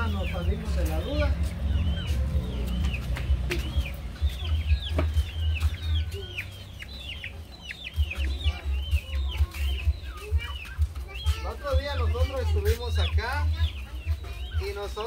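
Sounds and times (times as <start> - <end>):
chicks peeping: 0.0 - 15.0.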